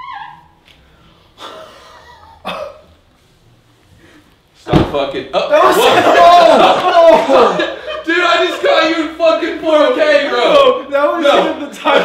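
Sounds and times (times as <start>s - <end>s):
cough-like bursts: 2.4s - 2.9s.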